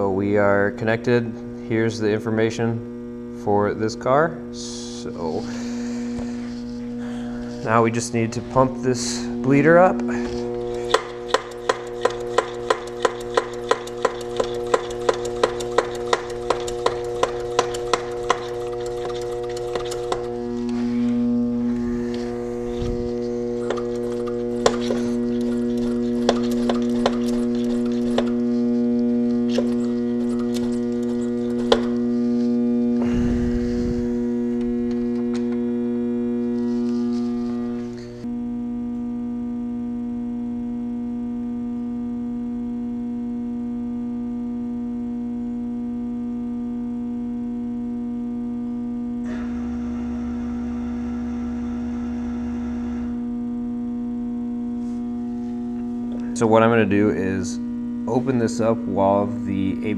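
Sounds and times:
electrical hum: 0.0s - 59.9s
hand pump clicks: 10.5s - 20.4s, 23.6s - 28.4s, 29.5s - 32.0s.

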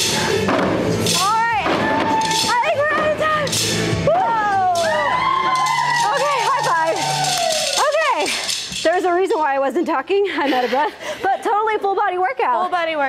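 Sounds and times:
workout music with bass: 0.0s - 9.2s
women whooping: 1.9s - 2.6s, 4.0s - 8.3s.

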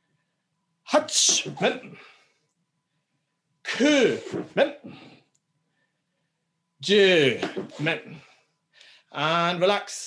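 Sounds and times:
man shouting harshly: 3.7s - 4.8s.

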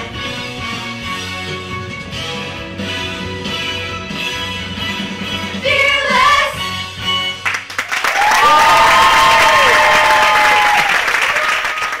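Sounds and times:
cast singing over backing track: 5.4s - 7.1s
audience applause and cheering: 7.4s - 12.0s.

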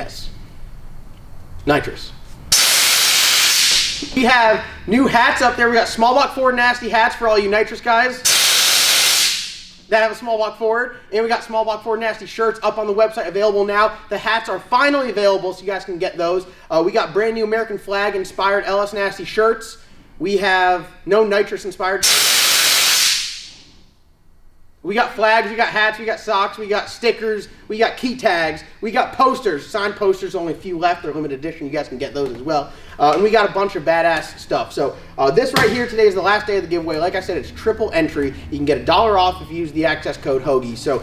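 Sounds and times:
gas hissing from bottle valve: 2.5s - 4.2s, 8.2s - 9.8s, 22.0s - 23.7s.

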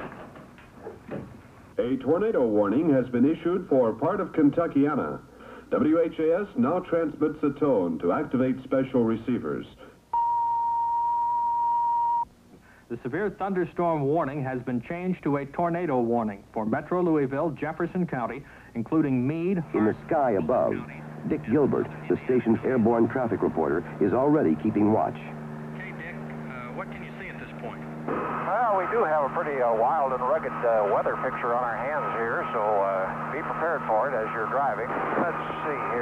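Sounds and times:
faint voices: 19.6s - 36.0s
helicopter drone: 19.6s - 36.0s.

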